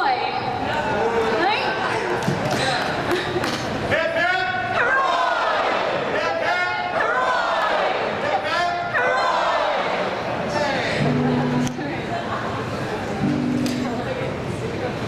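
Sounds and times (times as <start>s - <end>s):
people laughing: 1.8s - 3.9s, 10.9s - 14.4s
people talking: 10.4s - 15.0s.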